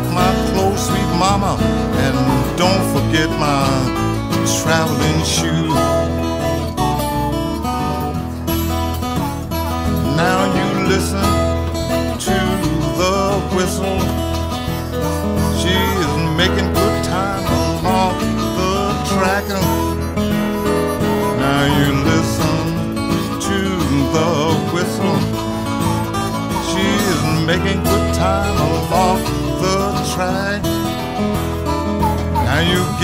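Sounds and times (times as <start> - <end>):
fingerpicked acoustic guitar: 0.0 - 33.0
harmonica with bent notes: 0.0 - 33.0.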